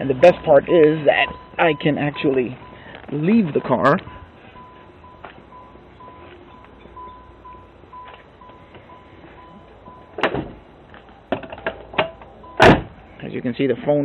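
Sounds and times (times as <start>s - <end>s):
car warning chime beeping: 0.0s - 10.2s, 12.2s - 12.7s
sharp thump: 11.3s - 13.0s.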